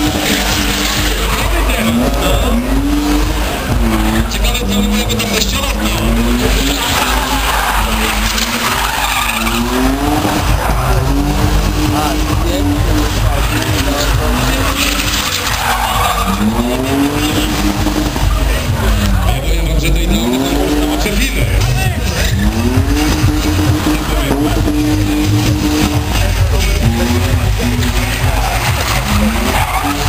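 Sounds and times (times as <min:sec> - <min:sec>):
car engine revving: 0:00.0 - 0:30.0
tyres squealing: 0:00.0 - 0:30.0.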